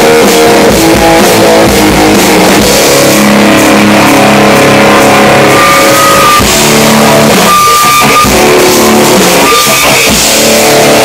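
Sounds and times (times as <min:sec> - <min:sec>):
distorted electric guitar chords: 0:00.0 - 0:11.0
high held tone: 0:00.0 - 0:11.0
live rock band: 0:00.0 - 0:11.0.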